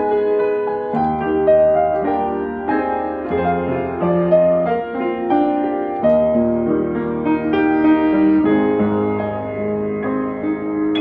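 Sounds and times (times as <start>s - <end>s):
upright piano playing chords: 0.0s - 11.0s.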